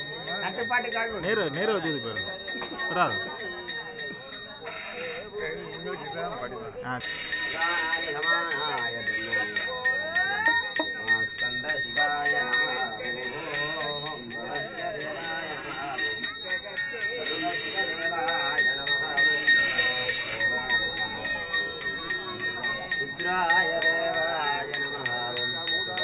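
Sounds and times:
hand bell ringing: 0:00.0 - 0:26.0
voices: 0:00.0 - 0:26.0.

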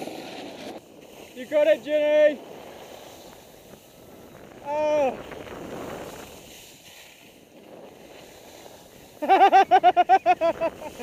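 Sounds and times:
skis sliding over snow: 0:00.0 - 0:11.0
wind on microphone: 0:00.0 - 0:11.0.

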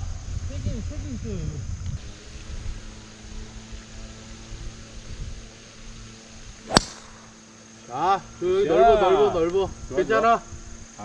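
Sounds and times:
golf club striking ball: 0:06.7 - 0:07.4.

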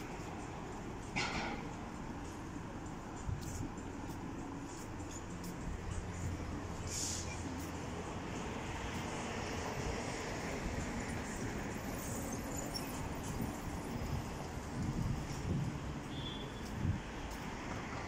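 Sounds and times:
city traffic noise: 0:00.0 - 0:18.0
low traffic swells: 0:00.0 - 0:18.0.

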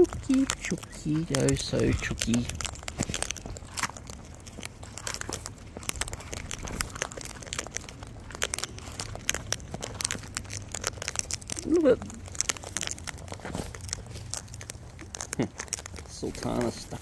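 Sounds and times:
beaks raking through seed: 0:00.0 - 0:17.0
birds cracking seeds: 0:00.0 - 0:17.0.

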